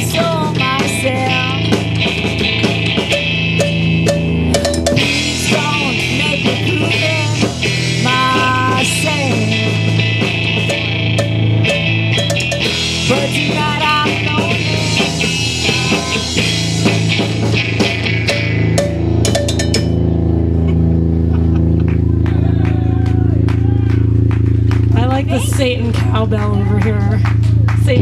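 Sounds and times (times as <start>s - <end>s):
drum kit with cymbal crashes: 0.0s - 20.2s
amplifier drone: 0.0s - 28.0s
distorted electric guitars: 0.0s - 28.0s.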